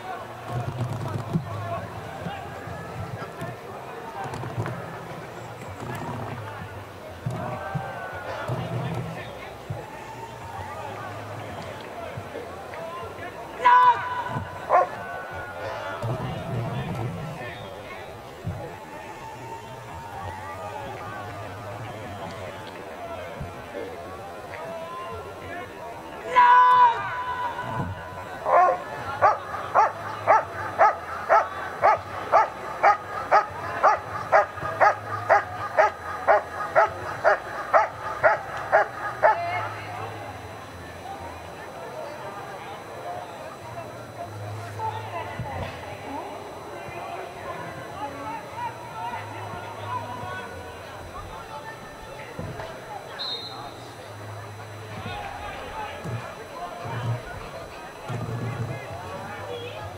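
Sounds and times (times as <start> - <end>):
dog barking: 14.7 - 15.0, 28.5 - 39.4.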